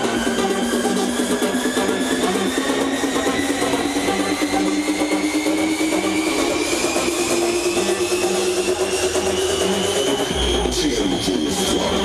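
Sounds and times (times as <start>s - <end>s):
rising synth tone: 0.0s - 10.9s
electronic dance music: 0.0s - 12.0s.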